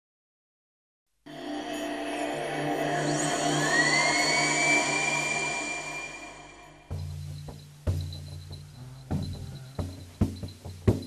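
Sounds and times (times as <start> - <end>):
rising synth sweep: 1.3 - 6.9
sustained high synth tone: 1.3 - 6.9
low drone: 1.3 - 7.1.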